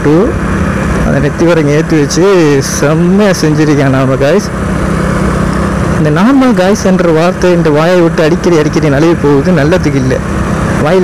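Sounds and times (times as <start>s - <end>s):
man talking: 0.0s - 0.4s, 1.0s - 4.5s, 6.0s - 11.0s
motorcycle engine running: 0.0s - 11.0s.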